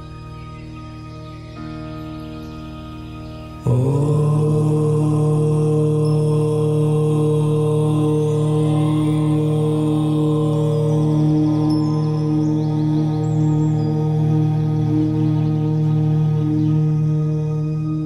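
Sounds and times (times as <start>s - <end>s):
ambient music drone: 0.0s - 18.0s
chanted om: 0.0s - 18.0s.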